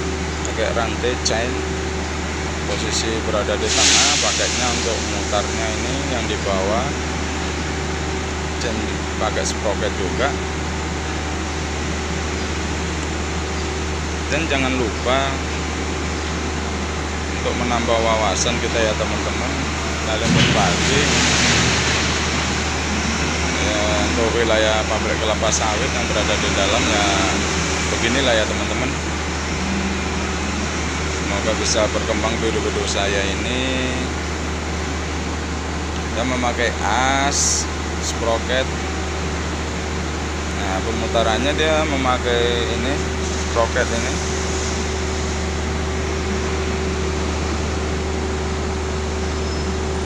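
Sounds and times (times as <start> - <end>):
constant low hum: 0.0 - 50.0
mill machinery drone: 0.0 - 50.0.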